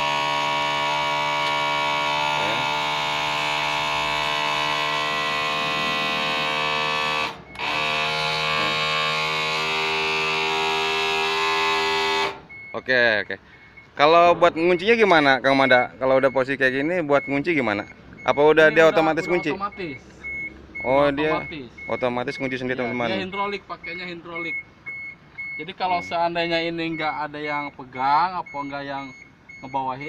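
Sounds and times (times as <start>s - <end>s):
hydraulic pump humming: 0.0s - 12.7s.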